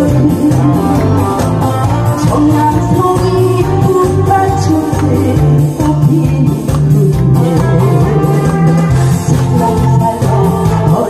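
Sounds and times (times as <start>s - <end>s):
instrumental music through speakers: 0.0s - 11.0s.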